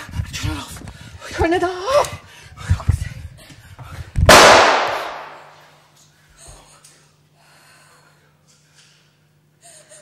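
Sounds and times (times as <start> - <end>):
loud sharp bang: 4.3 - 5.6.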